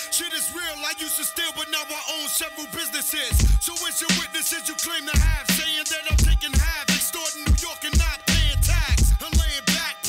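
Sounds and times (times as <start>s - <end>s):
rapping over a beat: 0.0s - 10.0s
deep bass hits: 3.4s - 3.6s, 5.2s - 5.4s, 6.2s - 6.4s.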